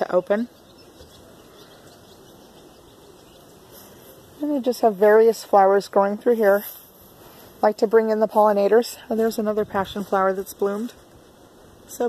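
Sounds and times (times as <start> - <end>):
low steady hiss: 0.0 - 12.0.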